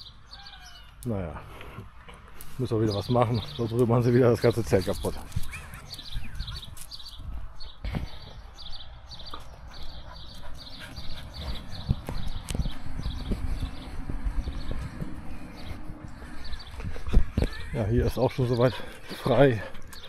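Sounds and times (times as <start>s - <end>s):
footsteps on concrete paving: 1.5s - 20.0s.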